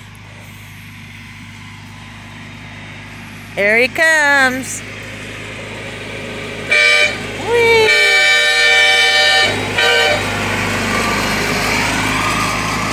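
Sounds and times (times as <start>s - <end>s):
riding mower engine running: 0.0s - 12.9s
train horn blasts: 6.7s - 10.3s.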